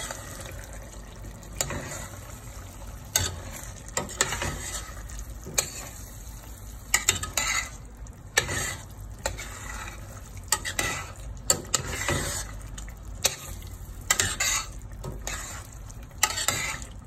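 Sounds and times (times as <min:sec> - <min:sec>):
sauce sizzling: 0:00.0 - 0:17.0
metal spoon scraping pot: 0:07.0 - 0:07.8, 0:14.1 - 0:16.9.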